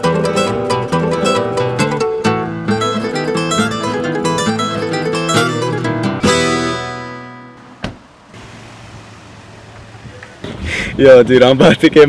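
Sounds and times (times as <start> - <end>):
car engine running: 7.6 - 10.6.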